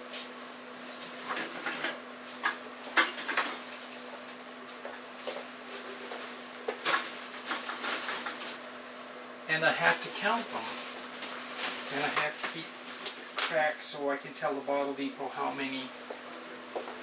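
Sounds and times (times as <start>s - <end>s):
plastic bags rustling: 5.7s - 8.7s, 9.8s - 13.7s.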